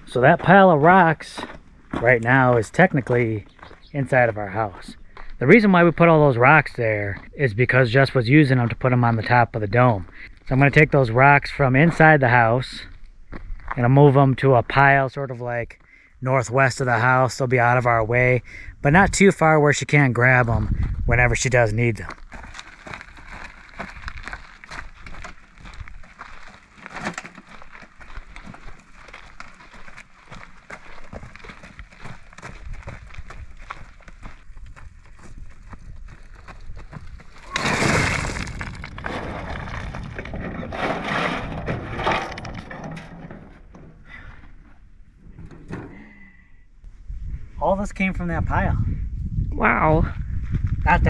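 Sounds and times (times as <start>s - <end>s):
rocks rattling in wheelbarrow: 22.0s - 33.5s, 36.8s - 44.0s
rocks tumbling onto a pile: 22.0s - 34.4s, 36.3s - 44.6s
wheelbarrow pushed over dirt: 37.4s - 44.0s.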